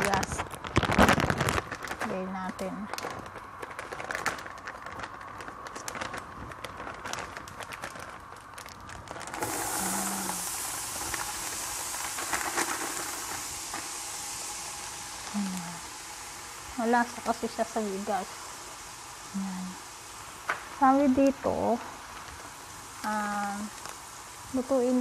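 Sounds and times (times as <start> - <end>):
crackles of vegetables in oil: 0.0 - 25.0
steady sizzle: 0.0 - 25.0.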